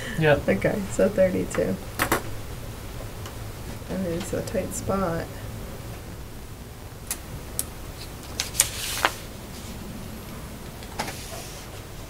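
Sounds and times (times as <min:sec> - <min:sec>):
low room hum: 0:00.0 - 0:12.0
sharp clicks and knocks: 0:01.5 - 0:02.3.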